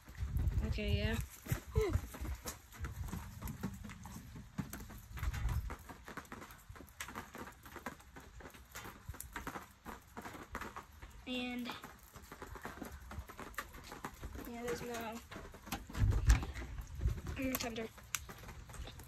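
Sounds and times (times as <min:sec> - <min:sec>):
raindrops tapping: 0:00.0 - 0:19.0
low thunder rumbling: 0:15.8 - 0:19.0.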